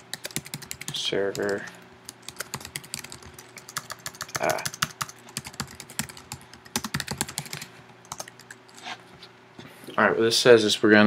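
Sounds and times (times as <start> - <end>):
typing on computer keyboard: 0.1 - 1.6, 2.2 - 8.6.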